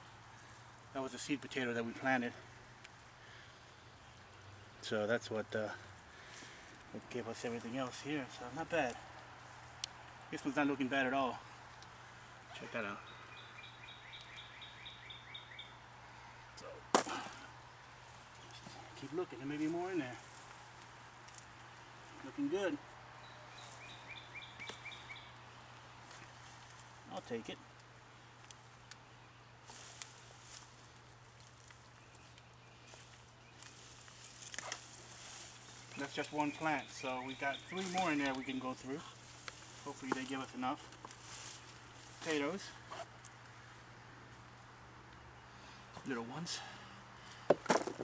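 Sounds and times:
soil and foliage rustling: 0.0 - 46.4
bird chirping: 11.4 - 16.8, 21.8 - 26.4, 35.4 - 40.8.

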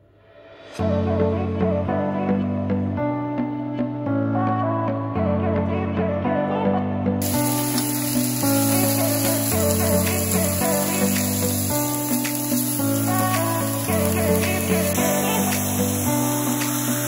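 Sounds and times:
electronic music with bass line: 4.4 - 17.0
steady hiss: 7.2 - 17.0.

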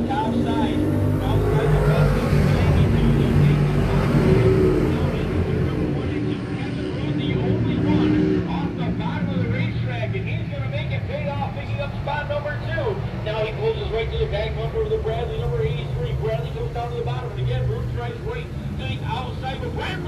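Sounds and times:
race cars at full throttle: 0.0 - 20.0.

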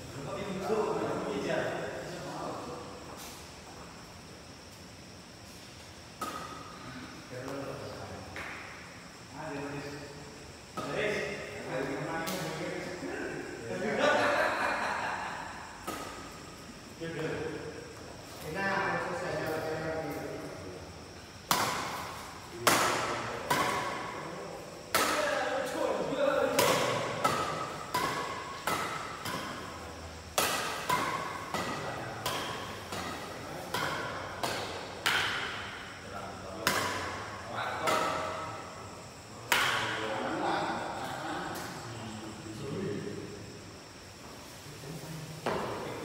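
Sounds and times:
rackets striking shuttlecock: 6.2 - 6.8, 15.8 - 16.5, 21.5 - 24.2, 24.9 - 25.8, 26.5 - 36.0, 36.6 - 38.7, 39.4 - 40.0
voices: 6.2 - 46.0.

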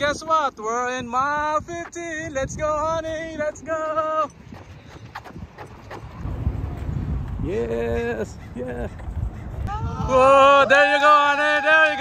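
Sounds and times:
running footsteps on pavement: 0.0 - 12.0
wind rumble on microphone: 0.0 - 12.0.

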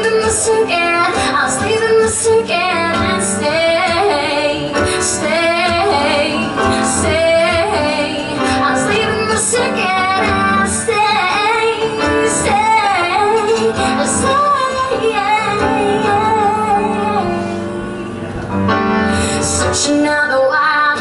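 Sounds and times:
strummed acoustic guitar: 0.0 - 19.8
woman singing into a microphone: 0.0 - 21.0.

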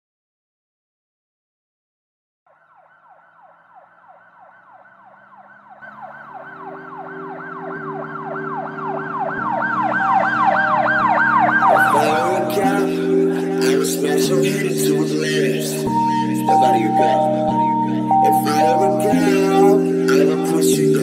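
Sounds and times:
siren wailing: 2.5 - 21.0
synth chords: 4.0 - 21.0
music beat: 7.8 - 21.0.

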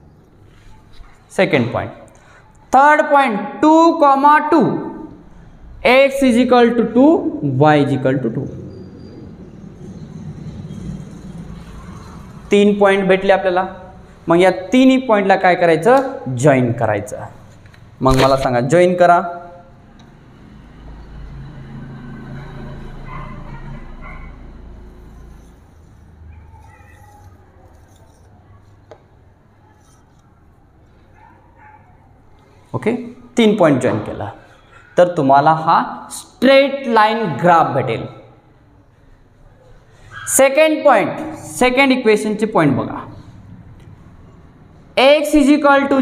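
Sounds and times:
person speaking: 12.5 - 19.6
marker squeaking on whiteboard: 24.9 - 31.9.

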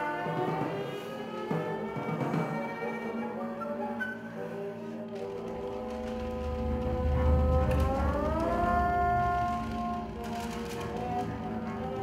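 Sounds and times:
chamber ensemble playing: 0.0 - 12.0
deep rumble: 5.5 - 10.8.

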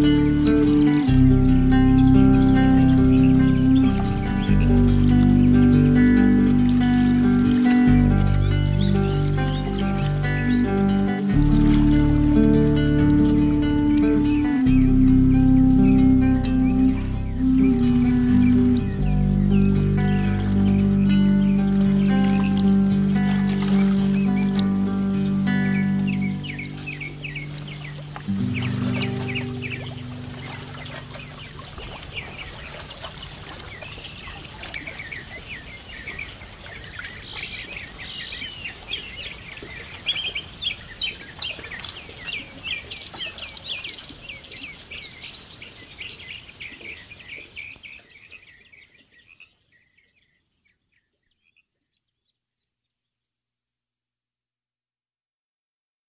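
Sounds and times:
music chords: 0.0 - 32.2
songbirds chirping: 0.0 - 53.3.

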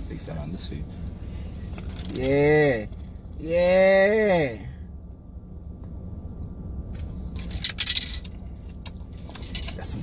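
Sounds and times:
car cabin rumble: 0.0 - 10.0.

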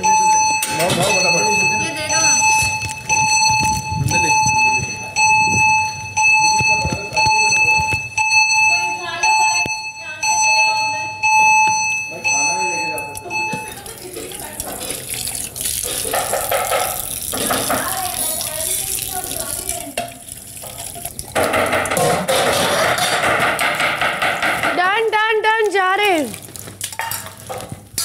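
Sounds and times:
people talking: 0.0 - 2.8, 4.0 - 5.7, 6.4 - 16.2, 17.4 - 20.2, 24.7 - 26.4
electronic alarm buzzer beeping: 0.0 - 14.3
broad noisy background: 0.0 - 28.0.

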